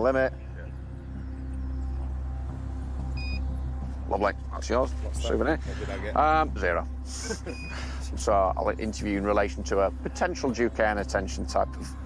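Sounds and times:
short electronic beep: 3.2s - 3.4s.

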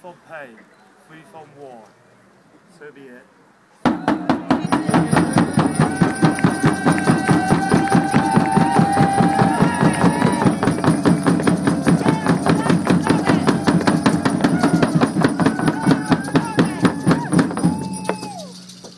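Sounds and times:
frame drum beaten with stick: 3.9s - 18.9s
voices chanting long notes: 4.7s - 17.9s.

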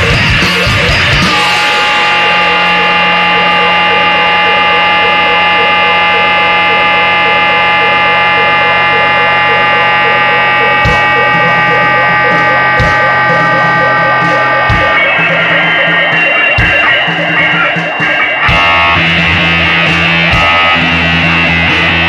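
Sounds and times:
distorted electric bass drone: 0.0s - 22.0s
drum hits: 10.8s - 21.0s.

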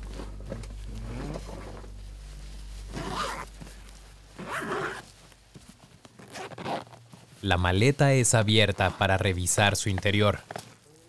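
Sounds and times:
suitcase zipper pulled open: 0.2s - 1.8s, 2.9s - 3.5s, 4.4s - 5.1s, 6.1s - 7.1s.

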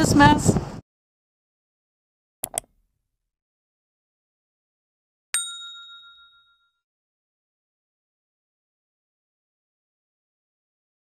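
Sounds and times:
notification bell ding: 5.4s - 6.8s.

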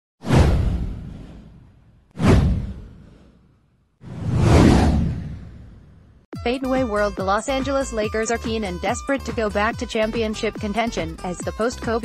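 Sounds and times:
whoosh: 0.2s - 6.3s
low rumble: 4.0s - 6.3s.

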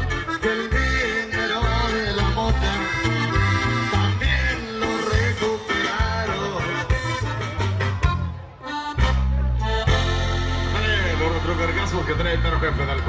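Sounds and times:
regional band dance music: 0.0s - 13.0s.

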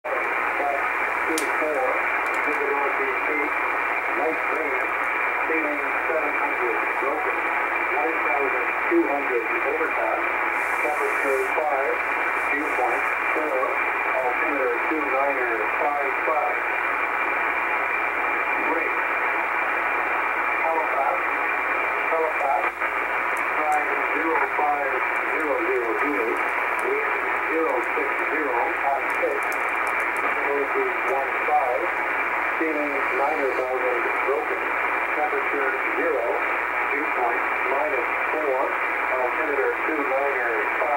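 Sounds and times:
narrow-band radio voice: 0.0s - 17.2s, 18.2s - 40.9s
static hiss: 0.1s - 40.9s.

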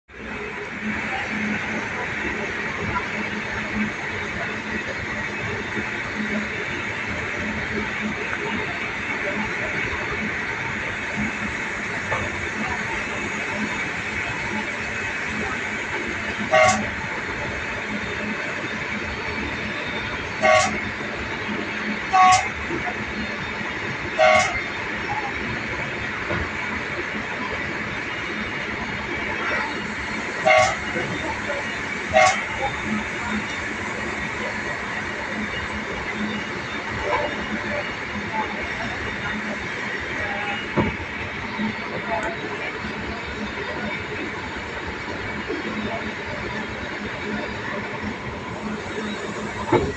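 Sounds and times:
train running rumble: 0.1s - 49.9s
train horn toots: 11.0s - 17.5s, 20.2s - 21.0s, 21.9s - 22.7s, 24.1s - 24.8s, 30.3s - 34.8s, 36.9s - 37.8s.

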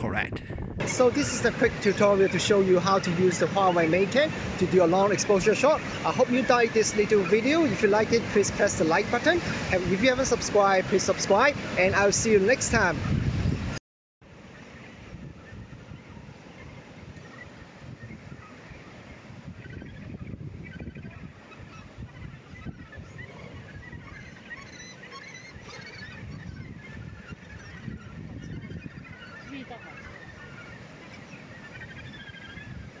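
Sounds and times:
low rumble: 0.0s - 1.0s
birds calling: 0.0s - 13.7s, 14.4s - 33.0s.

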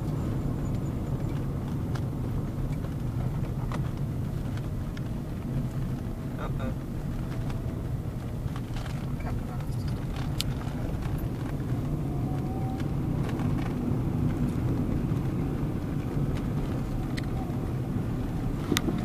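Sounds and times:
engine and tyre rumble: 0.0s - 19.0s.

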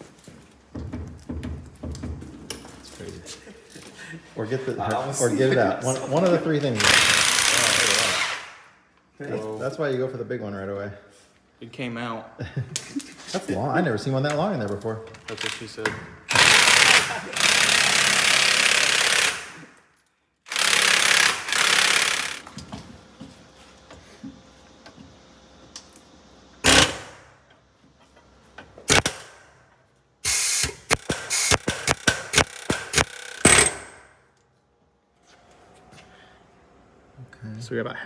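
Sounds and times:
pneumatic air hammer bursts: 16.3s - 19.7s, 20.5s - 22.5s, 26.6s - 27.3s, 28.9s - 29.4s, 30.2s - 34.1s.

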